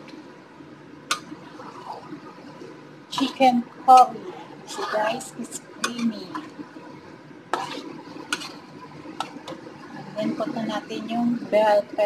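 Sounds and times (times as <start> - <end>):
spoon stirring thick curry: 4.7 - 6.6, 7.5 - 10.1.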